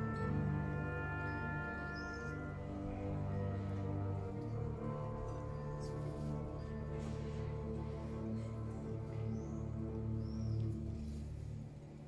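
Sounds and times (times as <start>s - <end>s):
orchestra playing: 0.0s - 12.0s.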